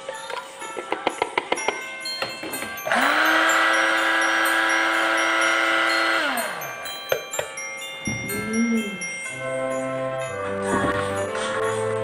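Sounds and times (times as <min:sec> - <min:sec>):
blender motor running: 0:02.8 - 0:06.8.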